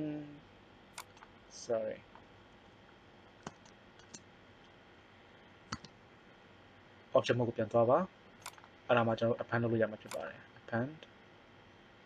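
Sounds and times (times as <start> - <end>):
faint steady hiss: 0.0 - 12.0
mouse and keyboard clicks: 1.0 - 1.3, 3.4 - 4.2, 5.7 - 6.0, 8.4 - 8.8, 10.0 - 10.3.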